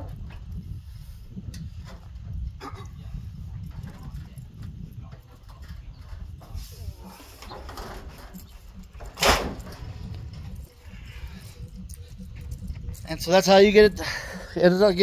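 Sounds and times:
wind rumble on microphone: 0:00.0 - 0:15.0
steel cage knocking and creaking: 0:01.4 - 0:15.0.

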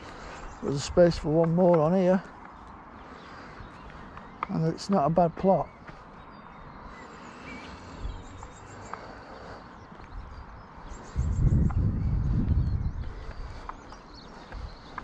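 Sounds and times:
soft footsteps: 0:00.0 - 0:06.9, 0:11.6 - 0:15.0
faint birdsong: 0:00.0 - 0:15.0
wind buffeting microphone: 0:09.8 - 0:15.0.

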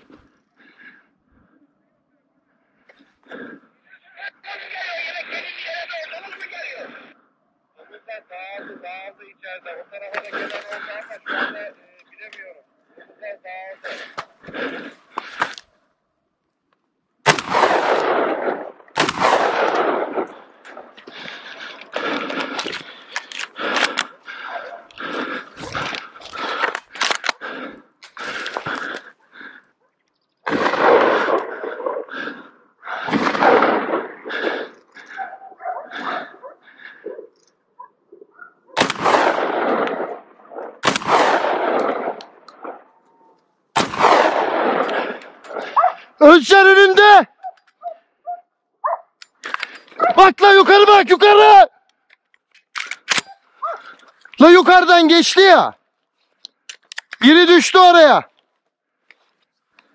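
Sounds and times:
gunshots echoing: 0:10.0 - 0:11.7, 0:17.2 - 0:29.1, 0:30.4 - 0:36.4, 0:38.8 - 0:47.0.

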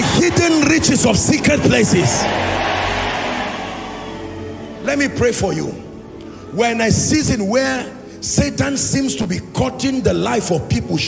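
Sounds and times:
man's voice: 0:00.0 - 0:02.3, 0:04.8 - 0:05.9, 0:06.5 - 0:11.0
congregation shouting: 0:00.0 - 0:04.9.

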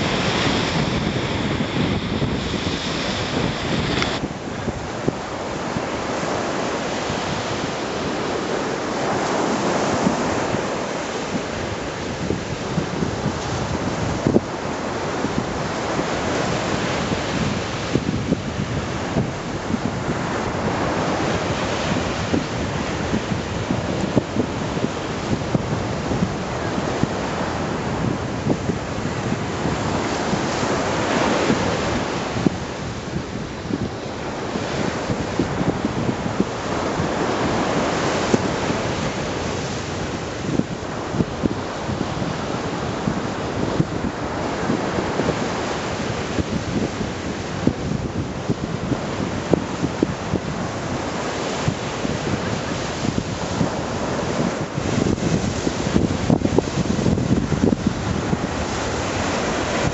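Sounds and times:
surf breaking against shore: 0:00.0 - 0:59.9
wind buffeting microphone: 0:00.0 - 0:59.9.

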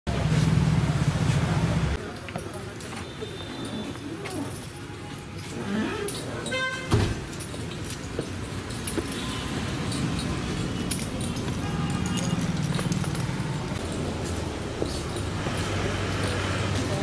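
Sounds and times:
traffic noise: 0:00.1 - 0:17.0
voices: 0:00.2 - 0:17.0
thump: 0:06.9 - 0:07.3.

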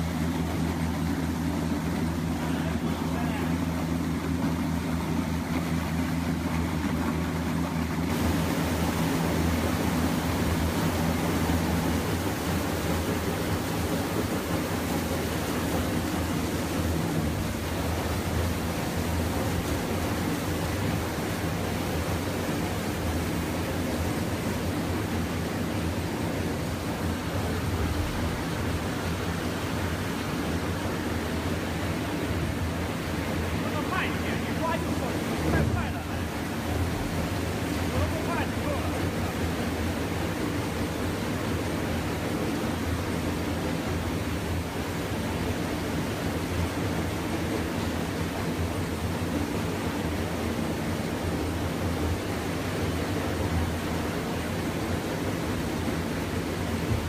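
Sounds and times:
machine hum: 0:00.0 - 0:42.5
water rushing and splashing: 0:00.0 - 0:57.0.

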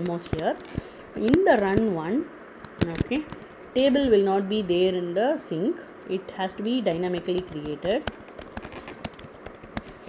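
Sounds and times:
computer keyboard keys clicking: 0:00.0 - 0:02.0, 0:02.6 - 0:03.8, 0:06.6 - 0:10.0.

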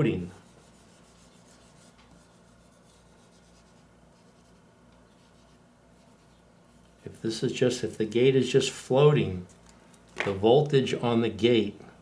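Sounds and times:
eraser rubbing on whiteboard: 0:00.0 - 0:06.5
low steady hum: 0:00.0 - 0:12.0.

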